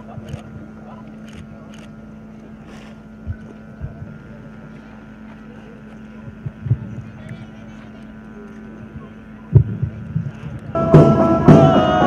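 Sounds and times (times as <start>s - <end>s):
steady low hum: 0.0s - 12.0s
dull low thumps: 3.2s - 4.8s, 6.2s - 7.3s, 8.9s - 11.8s
wind rumbling on microphone: 3.2s - 4.8s, 6.1s - 7.7s, 8.8s - 10.8s.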